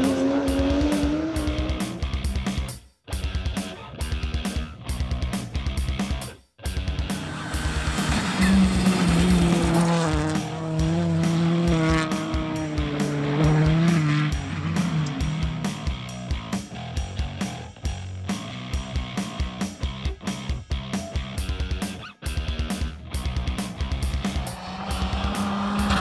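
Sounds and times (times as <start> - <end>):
car engine at high revs: 0.0 - 2.0, 6.9 - 16.0, 23.4 - 26.0
rock music: 0.0 - 26.0.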